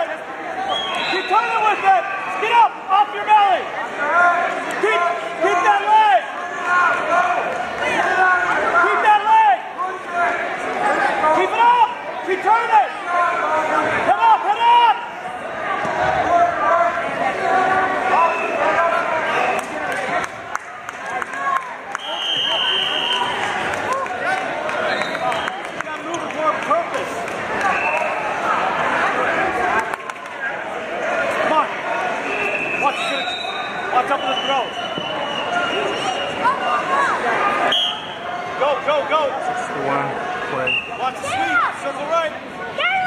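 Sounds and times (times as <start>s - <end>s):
voices calling out in gym hall: 0.0s - 43.0s.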